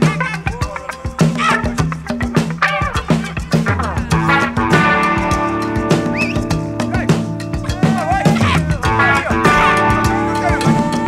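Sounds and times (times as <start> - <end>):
guitar notes: 2.6 - 11.0
drum hits: 3.0 - 11.0
bass notes: 3.6 - 11.0.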